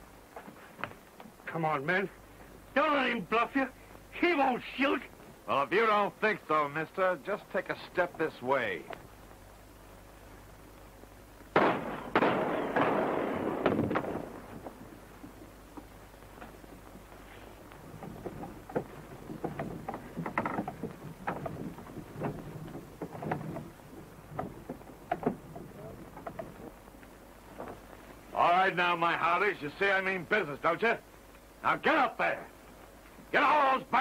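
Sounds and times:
low murmur of movement: 0.0 - 34.0
sudden loud burst: 11.6 - 14.5
knocks and thumps: 17.7 - 26.9.

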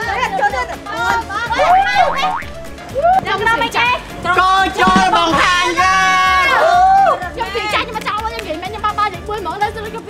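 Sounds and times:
background music: 0.0 - 10.0
cartoon boing sound effects: 1.6 - 2.8.

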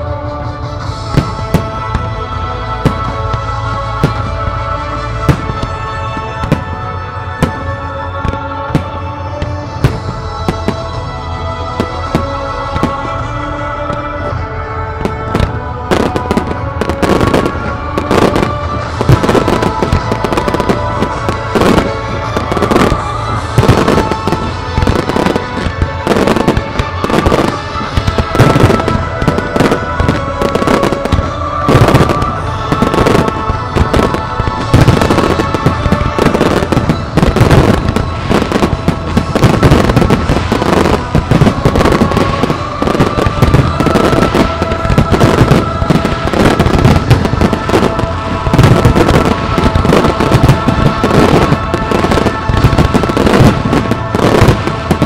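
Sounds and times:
fireworks bangs and crackles: 0.0 - 55.0
music: 0.0 - 55.0.

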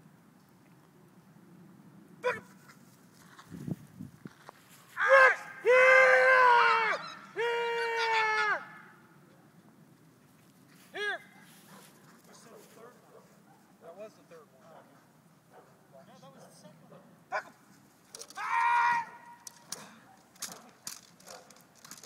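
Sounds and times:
person shouting long calls: 2.2 - 2.5, 5.0 - 9.0, 10.9 - 11.3, 18.3 - 19.4.

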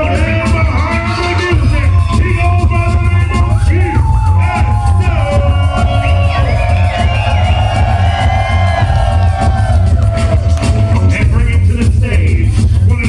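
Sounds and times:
loud hip-hop music: 0.0 - 13.0.

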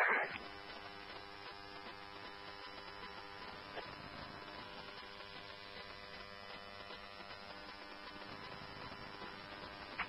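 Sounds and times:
radio scanner hum and hiss: 0.0 - 10.0.

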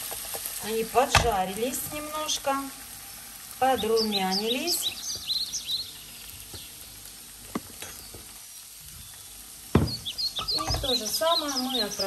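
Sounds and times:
cucumber sizzling in oil: 0.0 - 12.0.

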